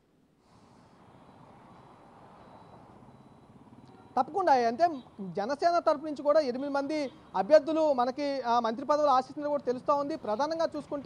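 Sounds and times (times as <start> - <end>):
thin steady high tone: 0.4 - 5.1.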